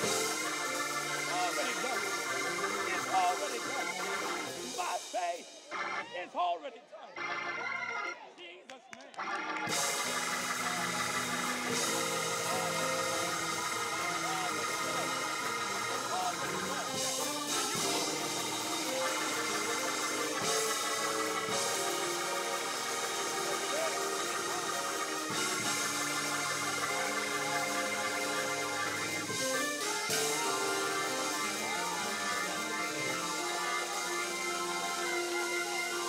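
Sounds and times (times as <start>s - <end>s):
church organ chords: 0.0s - 6.0s, 7.2s - 8.2s, 9.2s - 36.0s
voices praying and calling out: 0.0s - 36.0s.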